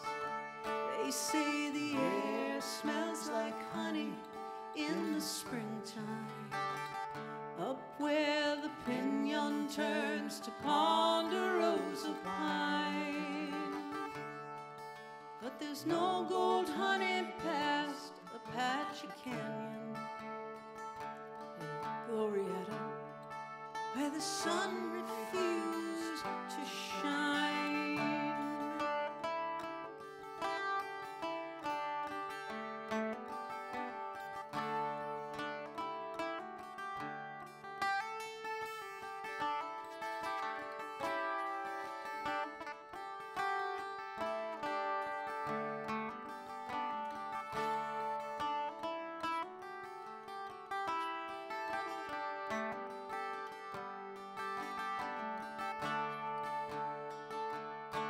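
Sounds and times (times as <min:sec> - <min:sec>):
twelve-string acoustic guitar: 0:00.0 - 0:58.0.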